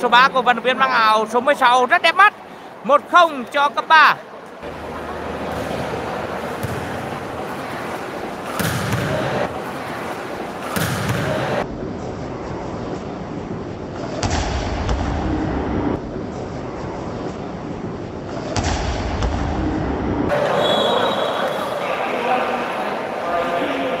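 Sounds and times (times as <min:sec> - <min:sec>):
crowd voices and shouts: 0:00.0 - 0:11.7, 0:20.3 - 0:24.0.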